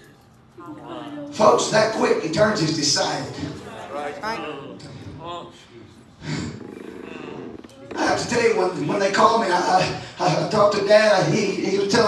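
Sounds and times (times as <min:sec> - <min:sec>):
man's rough vocal sound: 0:06.2 - 0:08.6.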